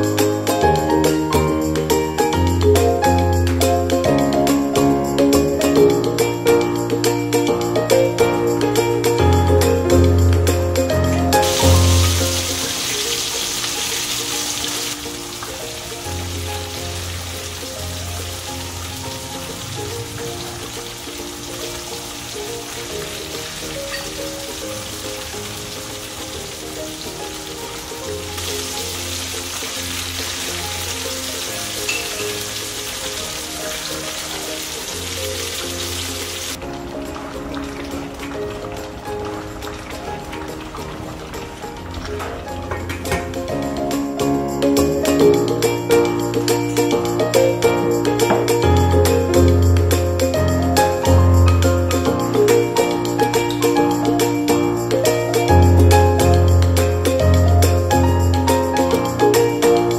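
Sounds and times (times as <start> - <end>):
background music: 0.0 - 59.9
food sizzling in oil: 10.8 - 42.6.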